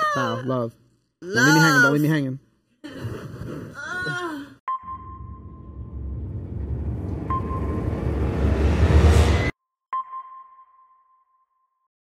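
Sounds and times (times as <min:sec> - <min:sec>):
sonar ping: 0:04.7 - 0:06.5, 0:07.1 - 0:08.4.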